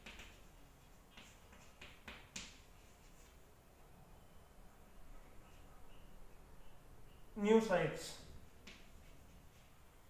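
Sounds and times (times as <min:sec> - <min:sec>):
chalk tapping and scratching on board: 0:00.0 - 0:03.4.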